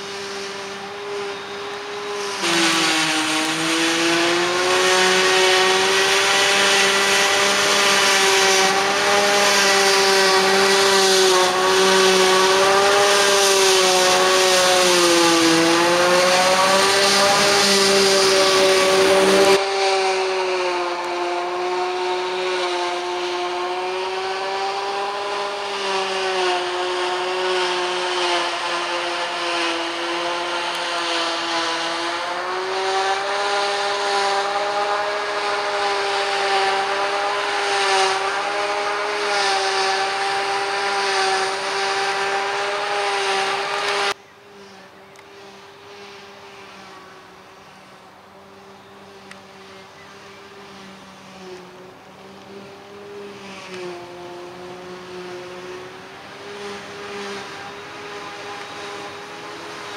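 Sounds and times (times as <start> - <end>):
forage harvester whine: 0.0 - 59.9.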